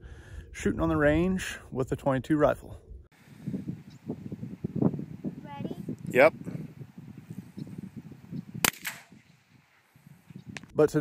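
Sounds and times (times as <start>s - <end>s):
rifle shot crack: 8.6s - 9.2s.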